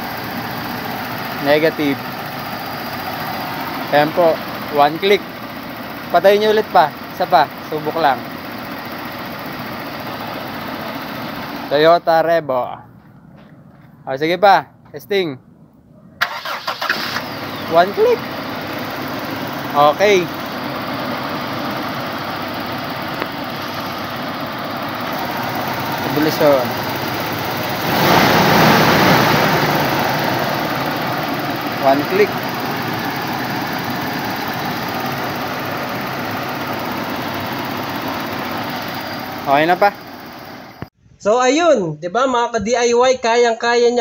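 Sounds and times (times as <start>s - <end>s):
car engine idling: 0.0s - 12.2s, 16.2s - 41.0s.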